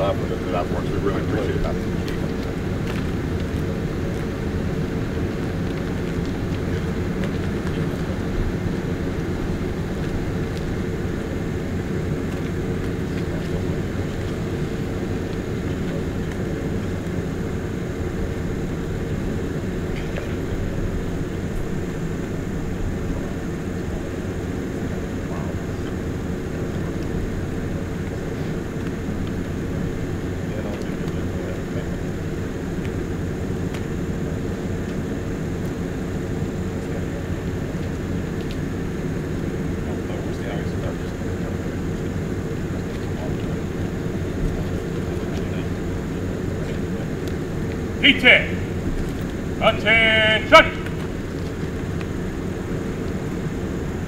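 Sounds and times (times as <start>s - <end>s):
fire engine idling: 0.0s - 54.0s.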